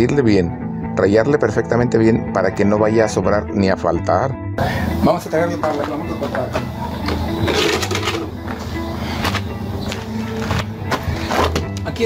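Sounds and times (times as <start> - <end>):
music with low held notes: 0.0 - 12.0.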